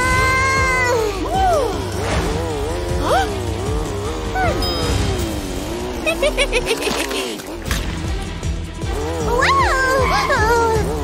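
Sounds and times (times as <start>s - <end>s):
cartoon car engine hum: 0.0s - 11.0s.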